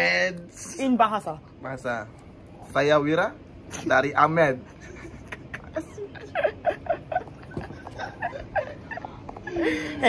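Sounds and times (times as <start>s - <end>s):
man laughing: 4.6s - 10.0s
woman laughing: 4.8s - 10.0s.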